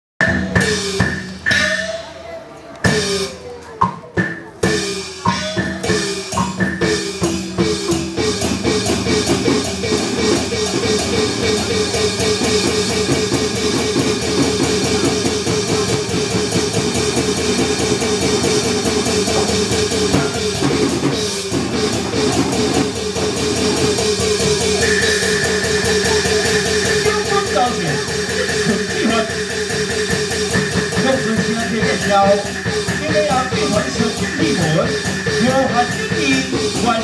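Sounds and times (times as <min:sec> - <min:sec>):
drums: 0:00.2 - 0:37.0
gongs: 0:00.2 - 0:37.0.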